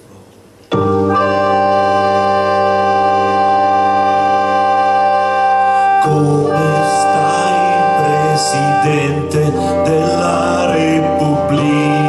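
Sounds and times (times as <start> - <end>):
electronic organ chord: 0.7 - 12.0.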